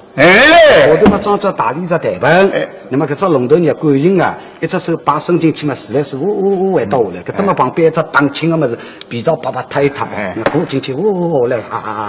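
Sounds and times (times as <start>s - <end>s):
man talking rapidly: 0.8s - 11.8s.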